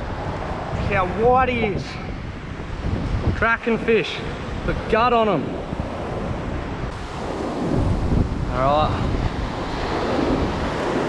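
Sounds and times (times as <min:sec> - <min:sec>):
wind buffeting microphone: 0:00.0 - 0:11.0
surf breaking on beach: 0:06.9 - 0:11.0.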